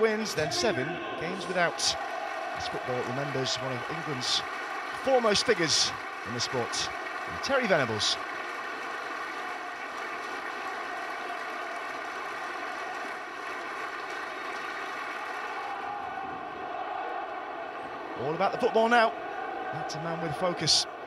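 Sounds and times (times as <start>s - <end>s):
stadium crowd applauding: 0.0s - 21.0s.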